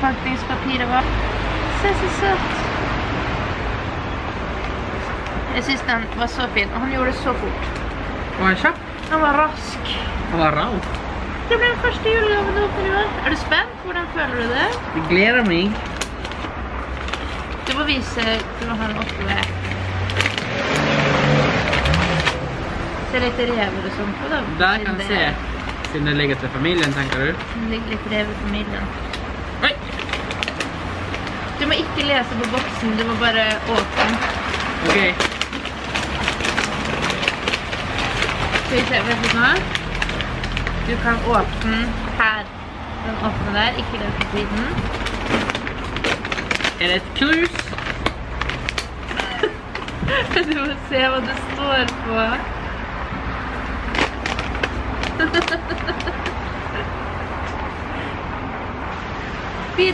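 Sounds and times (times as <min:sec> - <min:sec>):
wrapping paper crinkling: 0:14.6 - 0:22.4, 0:25.0 - 0:27.5, 0:28.1 - 0:42.1, 0:44.2 - 0:52.0, 0:53.5 - 0:56.6
wrapping paper tearing: 0:15.4 - 0:22.5, 0:25.2 - 0:27.5, 0:28.2 - 0:42.1, 0:44.2 - 0:52.0, 0:53.5 - 0:56.6.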